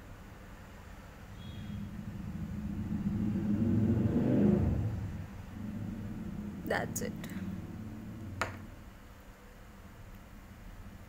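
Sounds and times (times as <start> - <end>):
low rumble: 1.8 - 9.0.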